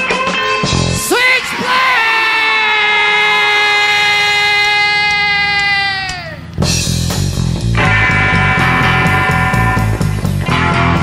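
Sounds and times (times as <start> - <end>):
surf rock band playing: 0.0 - 1.9, 6.4 - 11.0
surf rock guitar note: 6.6 - 11.0.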